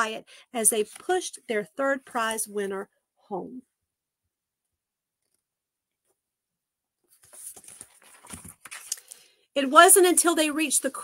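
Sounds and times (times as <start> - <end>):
book page turning: 7.0 - 9.2
paper rustling: 7.0 - 9.2.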